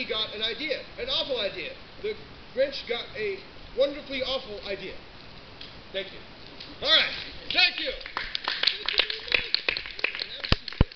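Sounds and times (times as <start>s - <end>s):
audience applauding: 7.5s - 10.9s.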